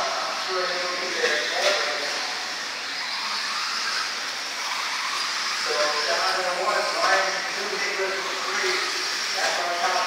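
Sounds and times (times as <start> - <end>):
rc buggy motors droning: 0.0 - 10.0.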